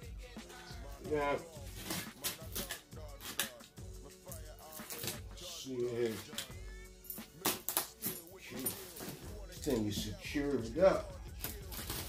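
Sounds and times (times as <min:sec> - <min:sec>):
quiet background music: 0:00.0 - 0:12.0
box cutter slicing tape and cardboard: 0:01.8 - 0:03.6, 0:04.8 - 0:05.2.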